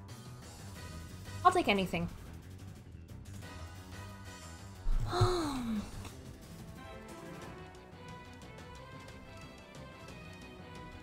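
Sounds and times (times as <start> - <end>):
background music: 0.0 - 11.0
woman sighing: 4.9 - 6.1.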